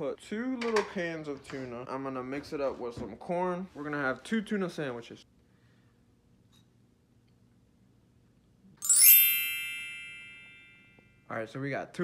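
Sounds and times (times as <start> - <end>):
bright high chime: 8.8 - 11.3.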